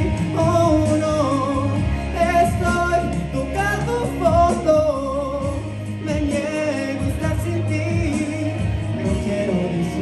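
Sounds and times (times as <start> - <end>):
instrumental backing music: 0.0 - 10.0
young man singing: 0.0 - 10.0.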